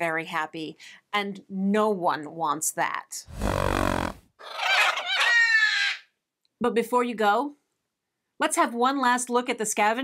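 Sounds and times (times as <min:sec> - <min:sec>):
high creature cry: 0:03.4 - 0:06.1.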